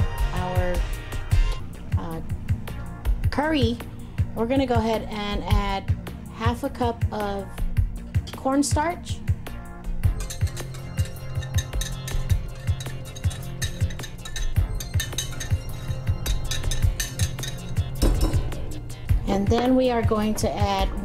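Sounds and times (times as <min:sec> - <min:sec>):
background music: 0:00.0 - 0:21.0
whisk tapping glass bowl: 0:10.1 - 0:18.6.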